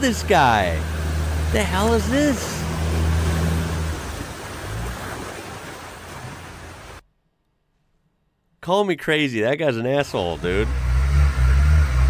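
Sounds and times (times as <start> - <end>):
floodwater rushing and splashing: 0.0 - 7.0, 10.2 - 12.0.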